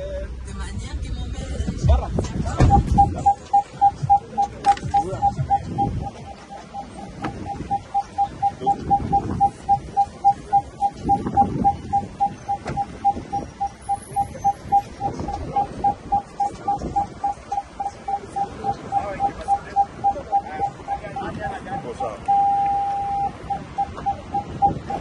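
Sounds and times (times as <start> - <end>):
car door warning chime beeping: 2.5 - 25.0.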